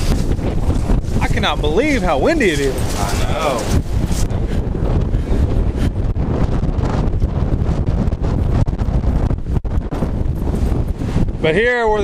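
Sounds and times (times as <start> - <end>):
gusty wind on microphone: 0.0 - 12.0.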